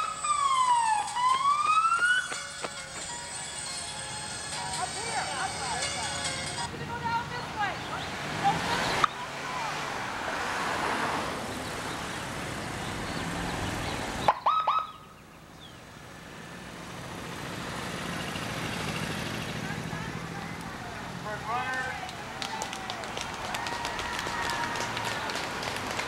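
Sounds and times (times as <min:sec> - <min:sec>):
police siren chirp: 0:00.0 - 0:02.6, 0:14.3 - 0:15.1
roadside background noise: 0:00.0 - 0:26.0.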